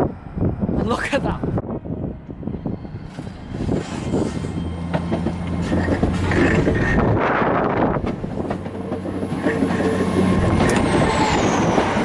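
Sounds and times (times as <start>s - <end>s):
train diesel engines humming: 0.0s - 12.0s
wheels rumbling on rails: 0.0s - 12.0s.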